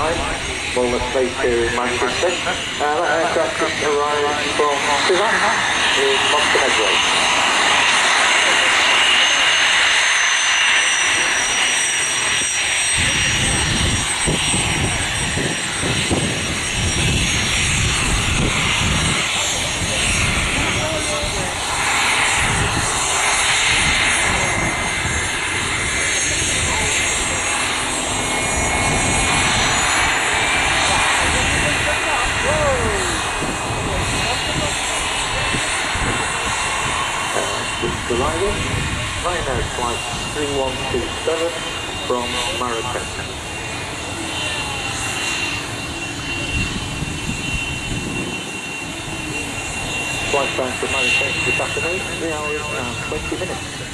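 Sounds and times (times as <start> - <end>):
jet engine whine: 0.0 - 53.9.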